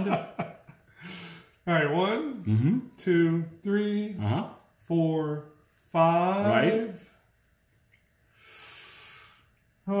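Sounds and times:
man saying oh: 2.5s - 2.8s.

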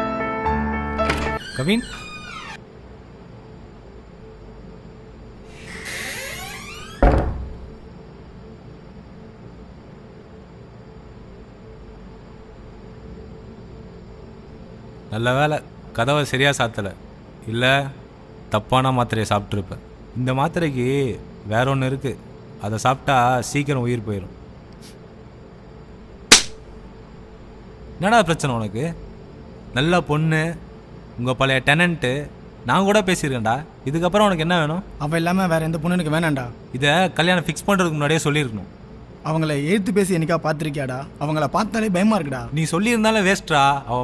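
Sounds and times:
faint steady hum: 0.4s - 44.0s
heavy bass thud: 7.0s - 7.8s, 26.3s - 26.6s
loud sharp crack: 26.3s - 26.7s.

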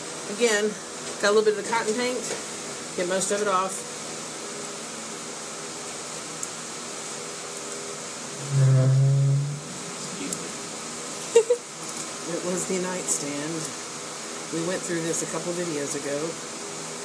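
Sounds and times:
electric fan running: 0.0s - 17.0s
brief low-pitched sound: 8.4s - 9.8s.

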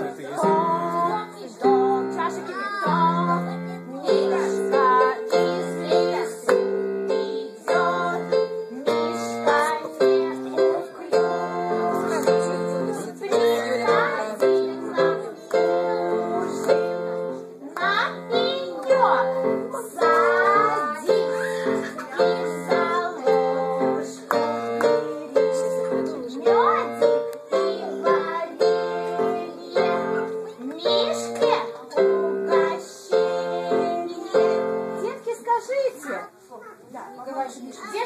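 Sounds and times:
voices singing: 0.0s - 35.2s.

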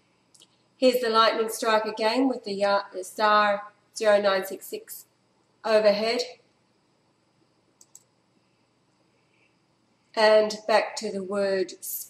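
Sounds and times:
faint clicks: 7.8s - 8.1s.

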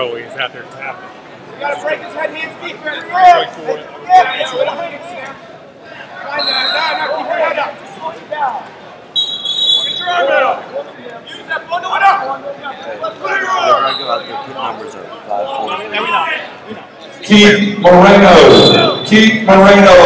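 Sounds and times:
people shouting and talking: 0.0s - 20.0s.

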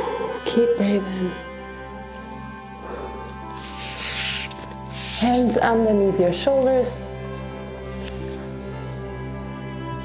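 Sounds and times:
background music sustained notes: 0.0s - 10.0s.

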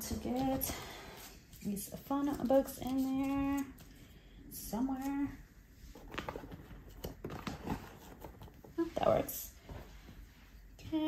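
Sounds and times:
rustling books: 0.0s - 4.0s, 4.8s - 11.0s.

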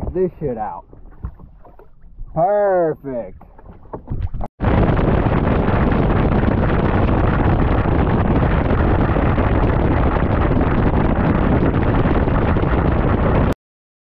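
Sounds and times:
wind buffeting microphone: 3.3s - 13.6s
boat running fast: 3.4s - 13.6s.

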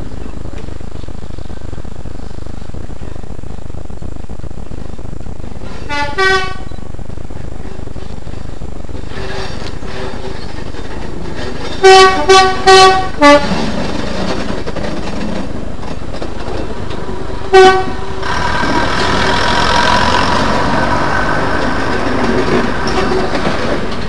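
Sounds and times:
background rumble: 0.0s - 24.0s
train horn: 5.8s - 6.7s, 11.8s - 13.6s, 17.5s - 18.5s
train horn short blasts: 5.8s - 6.7s, 11.8s - 13.6s, 17.5s - 18.0s.

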